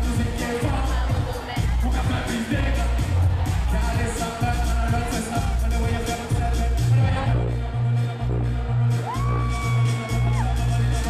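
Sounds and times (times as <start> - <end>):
loud dancehall music: 0.0 - 11.0.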